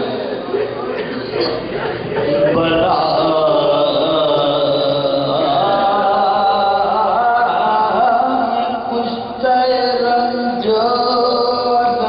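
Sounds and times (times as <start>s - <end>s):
man chanting unaccompanied: 1.8s - 12.0s.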